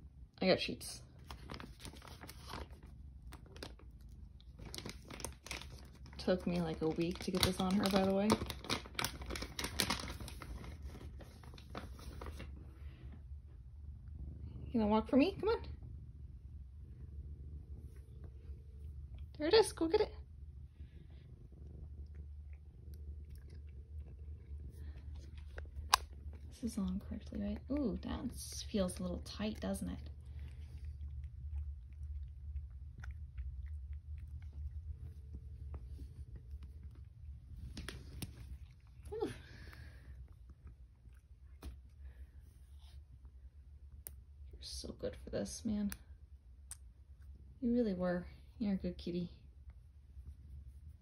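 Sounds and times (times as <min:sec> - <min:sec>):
cat purring: 0:01.0 - 0:46.2
crinkly plastic bag crackling: 0:01.1 - 0:12.6.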